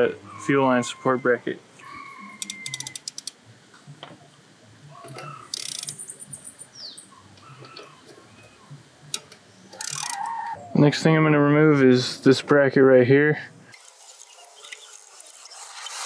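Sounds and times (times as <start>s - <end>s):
ratchet wrench clicking: 2.4s - 3.4s, 5.5s - 6.2s, 9.8s - 10.3s.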